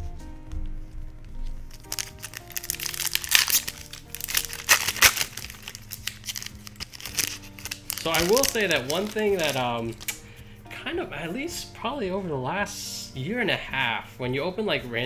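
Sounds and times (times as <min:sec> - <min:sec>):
soft background music: 0:00.0 - 0:15.0
foil wrapper crinkling: 0:01.7 - 0:10.2.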